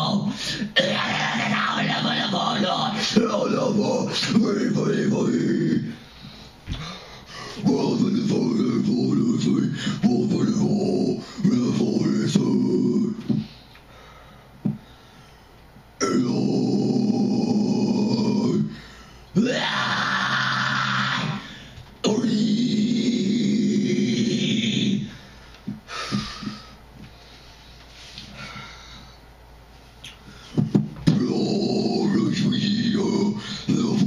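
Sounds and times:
harsh growled vocals: 0.0 - 6.0, 7.5 - 13.5, 16.0 - 18.8, 19.4 - 25.2, 31.0 - 34.0
man growling into microphone: 16.0 - 18.8, 19.4 - 25.2, 31.1 - 34.0.

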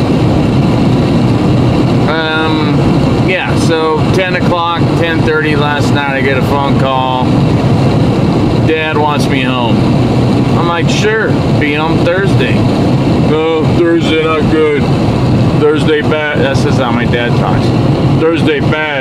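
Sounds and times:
car road and engine rumble: 0.0 - 19.0
man talking: 2.1 - 7.4, 8.6 - 9.9, 10.6 - 14.9, 15.6 - 19.0.

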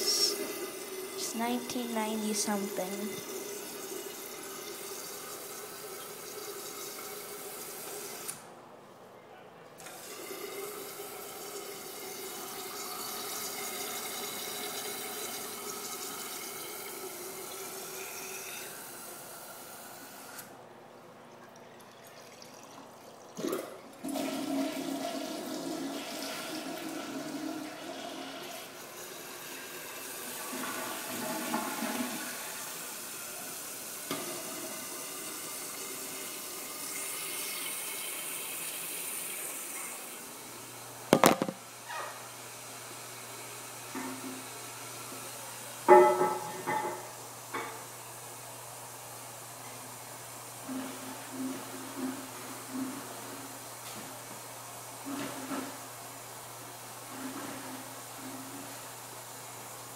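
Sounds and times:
toilet flushing: 0.0 - 8.4, 9.8 - 20.4, 21.4 - 48.0, 50.2 - 59.9
toilet tank refilling: 0.0 - 8.4, 9.8 - 20.4, 21.3 - 47.2
water running into overflow pipe: 0.0 - 8.4, 9.8 - 20.4, 21.3 - 46.6
sharp knocks: 41.1 - 41.6.

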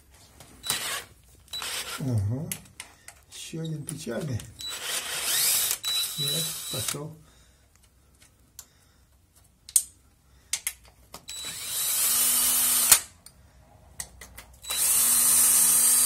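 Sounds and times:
cordless drill motor running: 0.6 - 2.0, 4.6 - 7.0, 11.3 - 13.0, 14.6 - 16.0
drill clicks: 0.6 - 2.0, 4.6 - 7.0, 10.6 - 13.1, 14.6 - 16.0.

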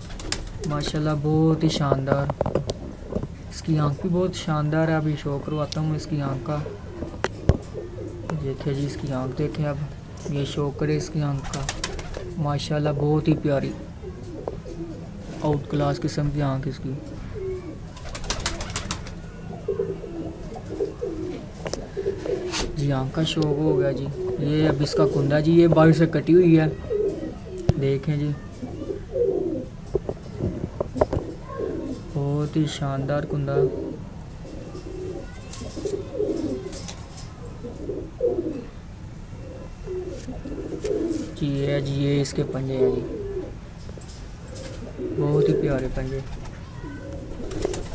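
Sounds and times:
pigeons cooing: 6.0 - 10.0, 11.0 - 12.7, 13.3 - 16.1, 17.0 - 32.2, 33.1 - 47.9.

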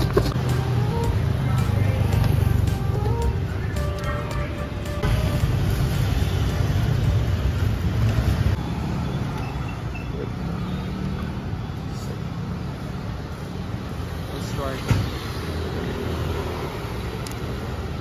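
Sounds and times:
rumble of passing vehicles: 0.0 - 18.0.

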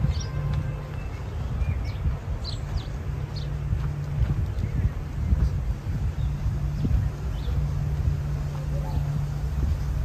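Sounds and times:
city traffic rumble: 0.0 - 10.0
footsteps on park path: 0.0 - 10.0
wind: 0.0 - 10.0.

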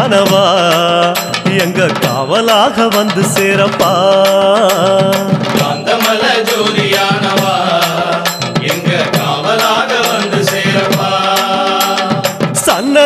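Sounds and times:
chant-like devotional singing: 0.0 - 13.0
steady percussion strokes: 0.0 - 13.0.

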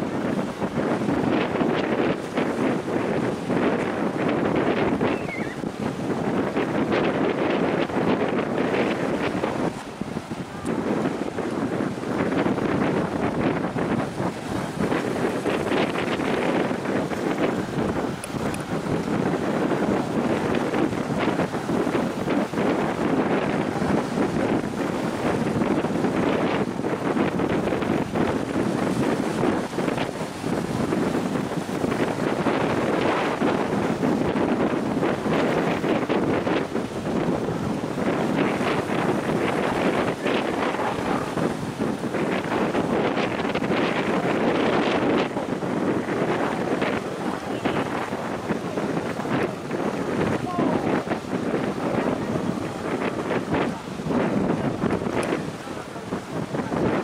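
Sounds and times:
wind blowing across microphone: 0.0 - 57.0.

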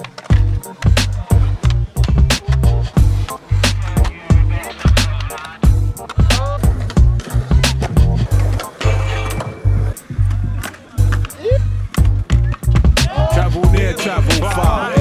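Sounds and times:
hip-hop beat with voice: 0.0 - 8.3, 12.4 - 15.0
skateboard clacks: 0.0 - 15.0
skateboard grinding on rail: 0.0 - 15.0
skateboard wheels rolling on concrete: 0.0 - 15.0.

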